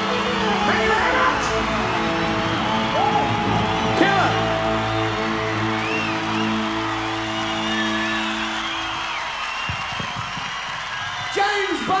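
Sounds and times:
rock band holding chord: 0.0s - 9.2s
crowd cheering: 0.0s - 12.0s.

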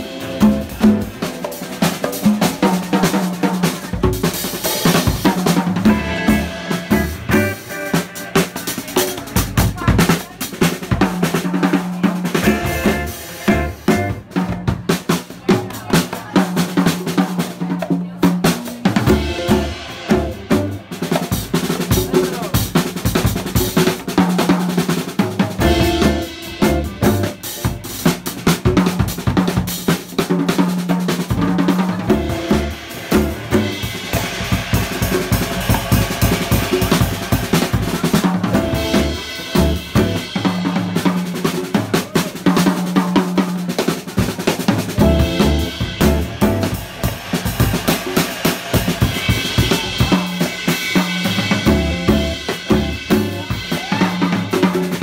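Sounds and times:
drum kit playing: 0.0s - 55.0s
double bass low notes: 19.0s - 20.9s, 25.6s - 27.4s, 32.0s - 33.8s, 45.0s - 46.7s, 51.6s - 53.5s.

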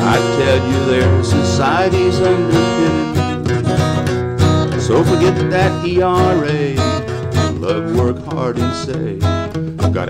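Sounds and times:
man singing: 0.0s - 3.4s, 4.7s - 10.0s
acoustic guitar strumming: 0.0s - 10.0s.

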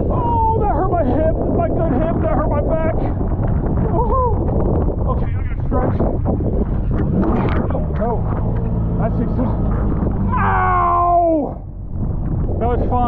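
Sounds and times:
jet ski engine running: 3.3s - 13.0s
man yelling: 10.3s - 11.7s.

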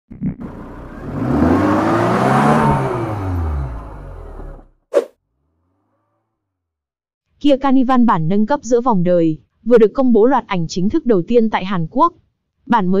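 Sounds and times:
car engine revving: 0.4s - 6.6s.

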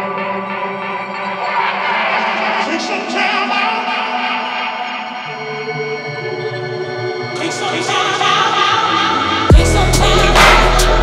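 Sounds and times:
held synth chords: 0.0s - 11.0s.

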